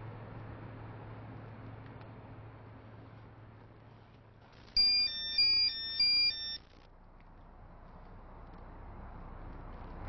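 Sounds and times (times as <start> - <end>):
phone ringtone beeps: 4.8 - 6.7.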